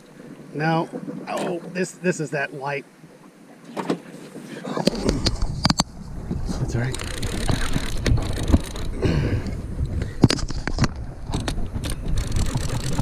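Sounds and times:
wind rumble on microphone: 4.8s - 13.0s.

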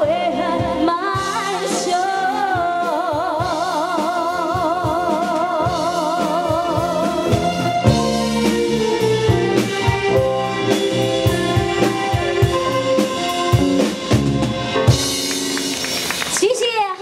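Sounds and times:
live band playing: 0.0s - 17.0s
woman talking: 16.3s - 17.0s.

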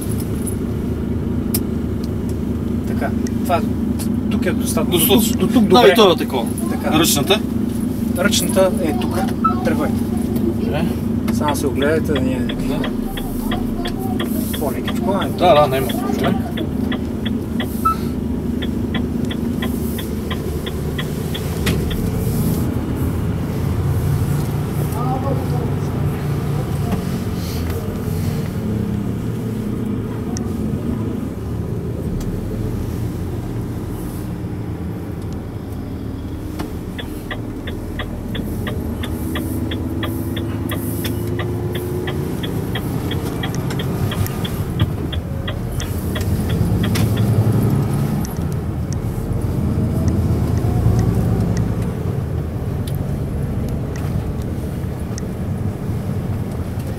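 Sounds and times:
truck diesel engine: 0.0s - 56.9s
light ticking: 11.3s - 22.2s, 35.1s - 49.1s, 50.0s - 53.0s.

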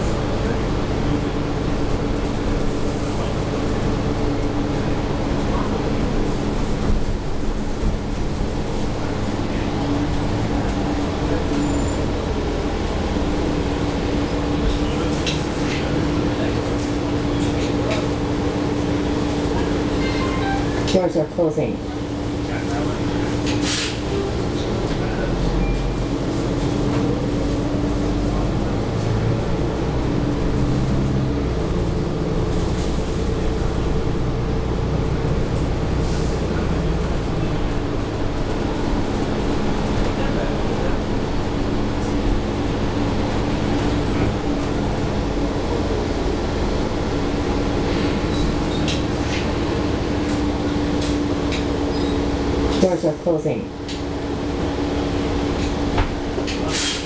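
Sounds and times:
bus cabin running noise: 0.0s - 57.0s.

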